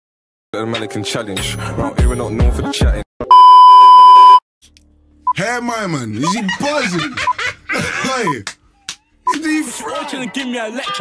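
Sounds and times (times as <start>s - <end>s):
loud electronic beep: 3.3s - 4.4s.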